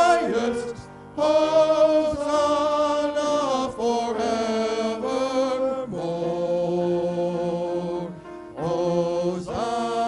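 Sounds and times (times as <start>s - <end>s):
male vocal quartet singing: 0.0s - 10.0s.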